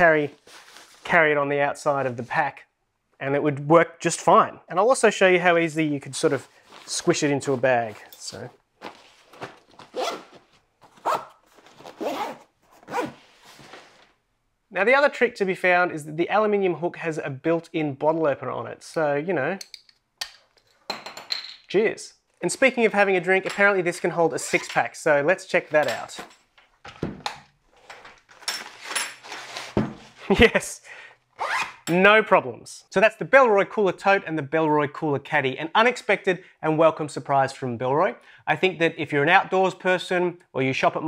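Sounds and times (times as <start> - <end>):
nylon fabric rustling: 6.0 - 14.2
zipper pulled shut: 9.8 - 13.4, 31.4 - 31.9.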